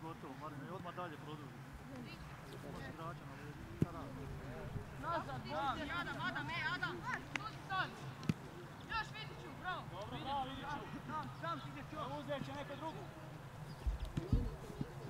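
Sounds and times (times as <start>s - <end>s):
young footballers calling and shouting: 0.1s - 15.0s.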